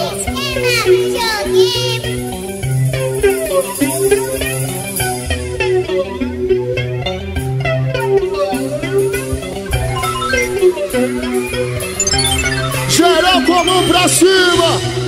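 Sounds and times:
live band playing: 0:00.0 - 0:15.0.

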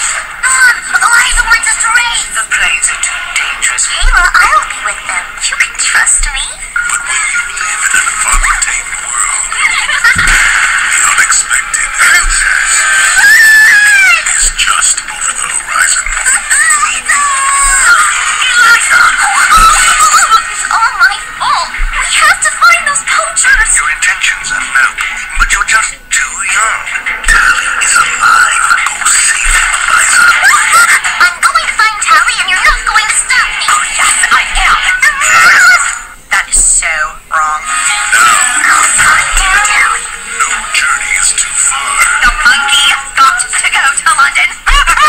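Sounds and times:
music with singing from television: 0:00.0 - 0:45.0.

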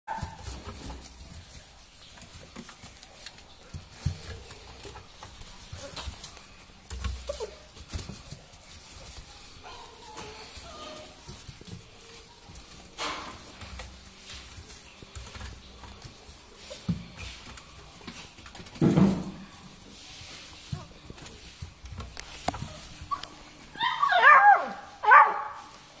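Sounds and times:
knocks and scuffling: 0:00.1 - 0:26.0
dogs crying: 0:23.1 - 0:25.6.

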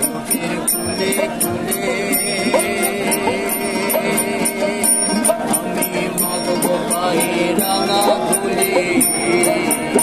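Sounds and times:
group singing folk song: 0:00.0 - 0:10.0
jingling percussion: 0:00.0 - 0:10.0
strummed ukulele: 0:00.0 - 0:10.0.

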